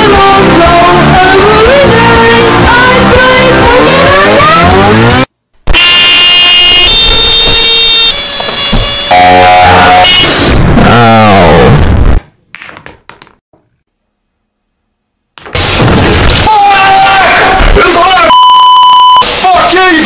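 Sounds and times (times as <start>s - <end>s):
distorted singing over music: 0.0s - 5.3s, 9.1s - 12.1s
distorted car horn: 3.2s - 11.7s, 18.2s - 19.2s.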